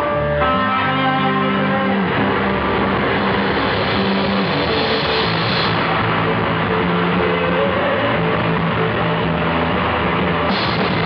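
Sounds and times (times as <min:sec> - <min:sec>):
heavy rock band playing: 0:00.0 - 0:11.0.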